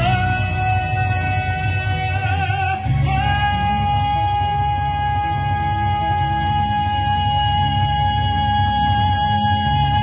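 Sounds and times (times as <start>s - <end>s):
backing music: 0.0s - 10.0s
man singing long high note: 0.0s - 10.0s.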